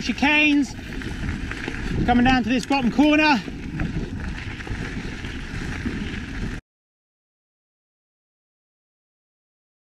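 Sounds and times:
bike tyres rolling on dirt trail: 0:00.0 - 0:06.6
wind on microphone: 0:00.0 - 0:06.6.

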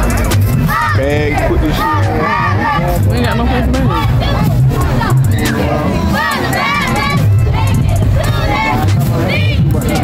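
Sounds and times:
music with booming bass beat: 0:00.0 - 0:10.0
girls shouting a cheer: 0:00.6 - 0:01.0, 0:01.7 - 0:02.9, 0:03.8 - 0:09.7.

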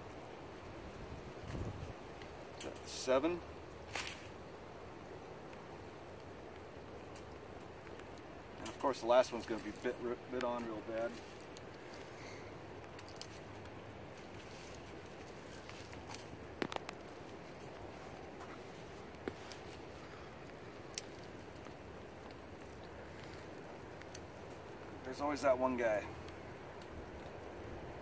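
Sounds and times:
wire clicks and taps: 0:15.6 - 0:19.8.

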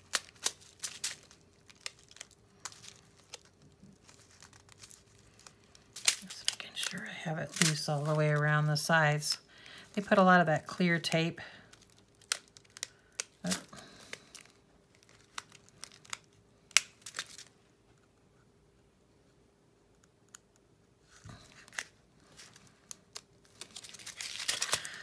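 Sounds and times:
clear tape crinkling: 0:00.0 - 0:17.6, 0:20.2 - 0:25.0.

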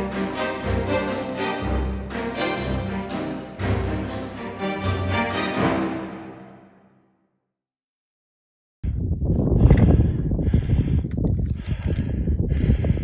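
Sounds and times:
orchestral music: 0:00.0 - 0:07.2
wind rumbling on microphone: 0:08.8 - 0:13.0
heavy breathing: 0:09.6 - 0:13.0.

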